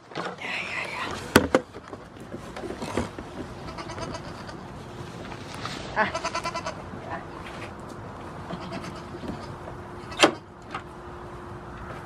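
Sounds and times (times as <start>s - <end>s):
goat kids bleating faintly: 3.6s - 4.7s, 5.9s - 7.3s, 8.4s - 10.5s.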